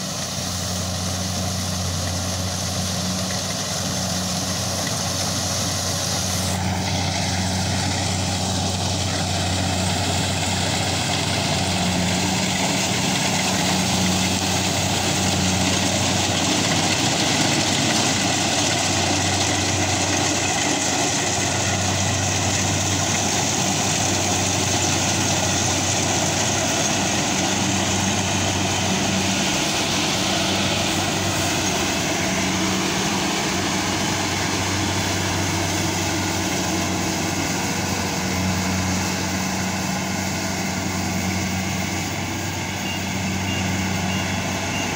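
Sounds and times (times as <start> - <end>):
diesel engine hum: 0.0 - 44.9.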